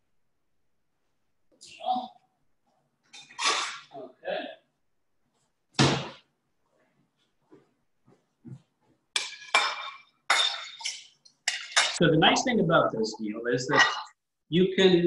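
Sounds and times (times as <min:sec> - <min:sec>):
ceramic plates clattering: 0:09.2 - 0:12.0.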